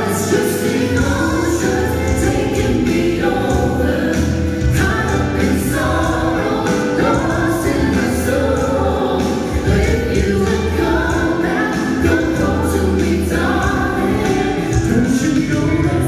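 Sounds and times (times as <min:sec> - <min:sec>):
accompanying music over sound system: 0:00.0 - 0:16.0
vocal trio singing: 0:00.0 - 0:16.0.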